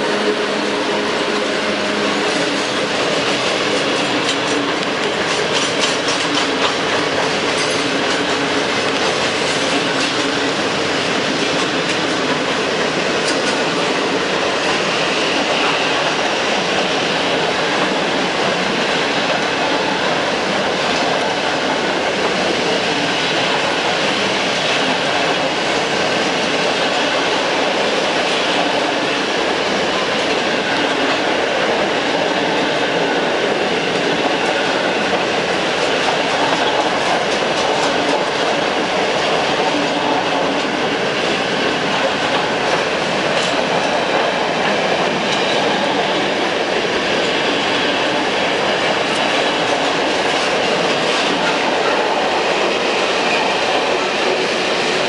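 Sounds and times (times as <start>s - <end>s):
freight train wheels rumbling: 0.0s - 55.0s.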